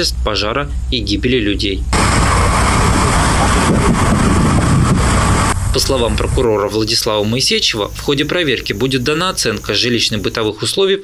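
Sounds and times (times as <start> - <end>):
fire engine rumble: 0.0 - 10.6
hose jet rushing water: 2.0 - 10.5.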